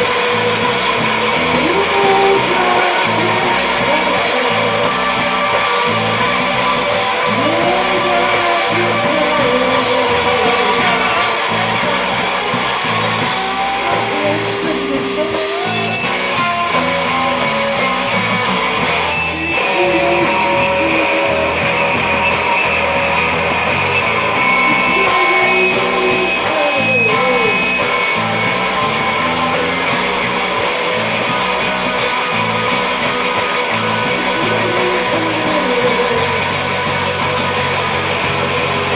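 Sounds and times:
drums and cymbals: 0.0 - 38.9
electric guitar strummed: 0.0 - 38.9.

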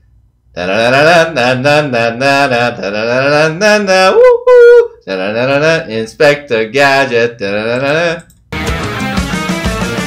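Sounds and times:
man singing wordless melody: 0.5 - 8.4.

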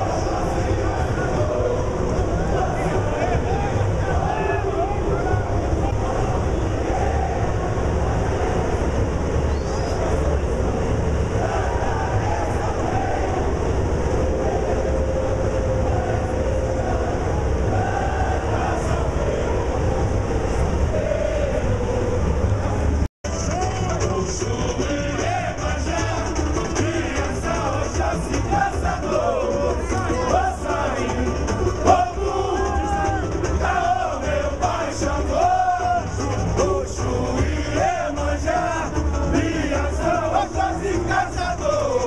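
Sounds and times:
rumbling samba drums: 0.0 - 21.5, 22.2 - 42.0
many voices singing: 0.0 - 42.0.

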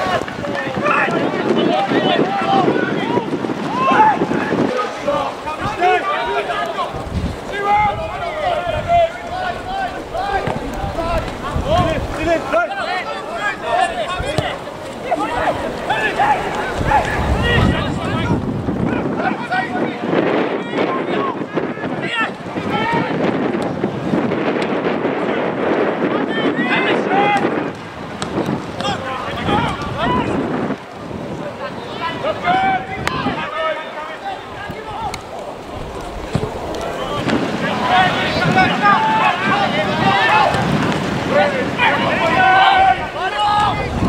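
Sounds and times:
voices shouting and calling: 0.0 - 44.0
wind noise on microphone: 0.0 - 44.0.

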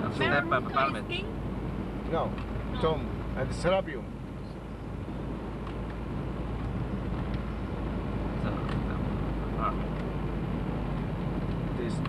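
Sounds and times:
engine and tyre rumble: 0.0 - 12.0.

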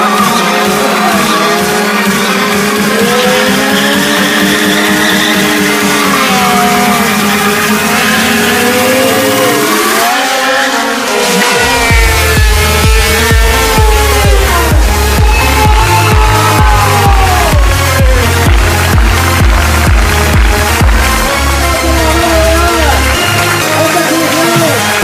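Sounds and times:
dance music with heavy bass: 0.0 - 25.0
motorcycle engine revving high: 0.0 - 25.0
motorcycle tyre squealing: 3.1 - 16.8.

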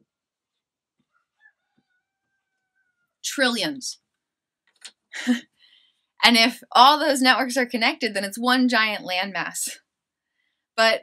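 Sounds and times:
faint rooster crowing: 1.4 - 3.2.

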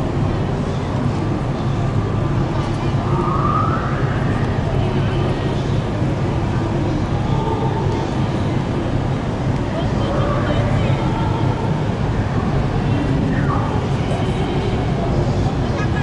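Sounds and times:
ship engines droning: 0.0 - 16.0.

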